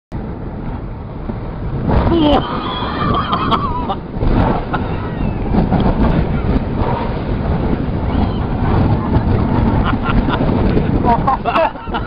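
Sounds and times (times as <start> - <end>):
bobsleigh sliding over ice: 1.7 - 12.0.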